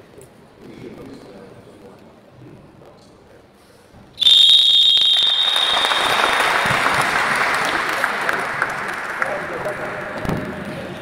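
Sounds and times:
referee's whistle blast: 4.2 - 7.0
crowd applauding: 4.2 - 10.6.

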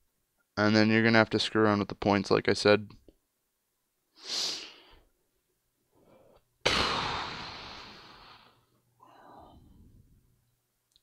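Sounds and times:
person breathing in: 6.0 - 10.0
person sighing heavily: 6.1 - 9.8.

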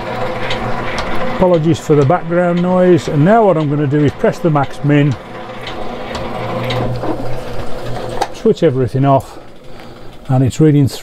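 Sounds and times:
low motor hum: 0.0 - 11.0
shaping machine running: 0.0 - 11.0.

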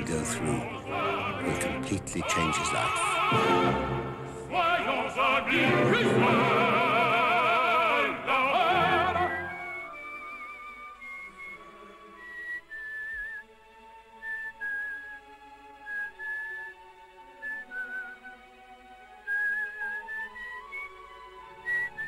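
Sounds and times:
soft sustained backing music: 0.0 - 22.0
slow tune whistled with vibrato: 8.7 - 22.0.

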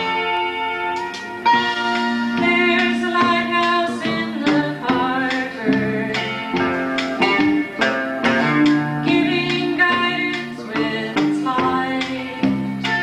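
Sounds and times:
acoustic guitar strumming: 0.0 - 13.0
sustained melody notes: 0.0 - 13.0.

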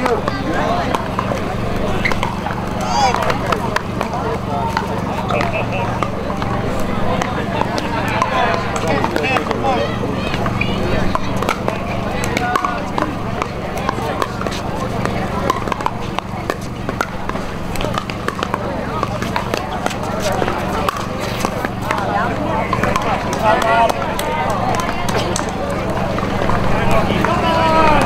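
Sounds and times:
paddles hitting plastic ball: 0.0 - 28.0
spectators chatting: 0.0 - 28.0.

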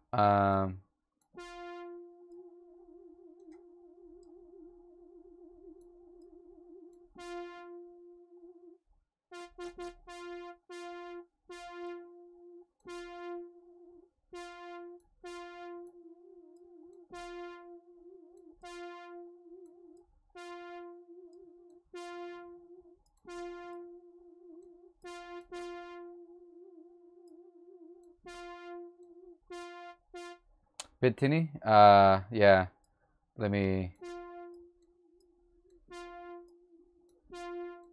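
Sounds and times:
synth lead repeating note: 1.4 - 30.4, 33.9 - 37.9.

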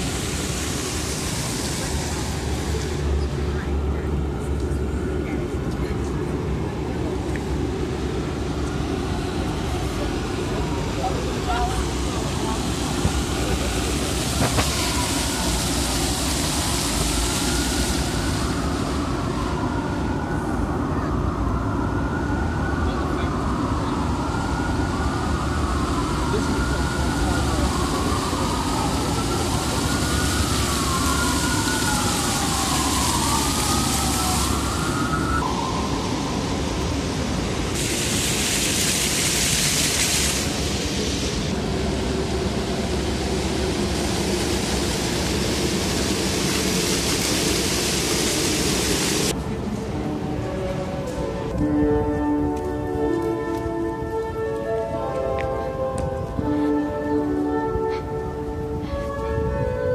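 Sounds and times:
fountain water splashing: 0.0 - 59.8
city traffic: 0.0 - 59.9
wailing siren: 6.7 - 37.8, 41.4 - 59.9.

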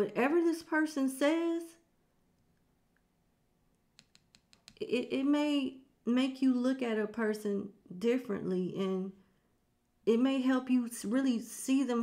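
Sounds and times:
fingernail tapping on cards: 4.0 - 4.8.

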